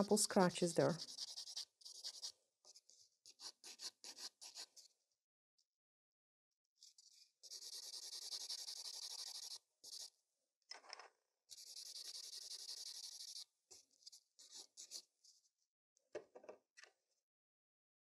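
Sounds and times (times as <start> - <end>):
nail buffer rubbing on nail: 0.0 - 4.9, 6.8 - 10.1, 11.5 - 15.1.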